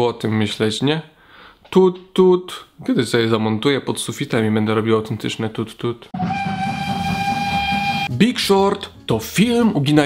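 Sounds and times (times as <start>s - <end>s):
train whistle blast: 6.2s - 8.1s.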